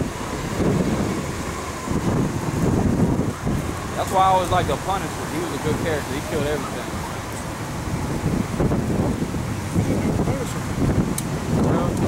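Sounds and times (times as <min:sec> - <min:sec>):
city street noise: 0:00.0 - 0:12.0
wind buffeting microphone: 0:00.0 - 0:12.0.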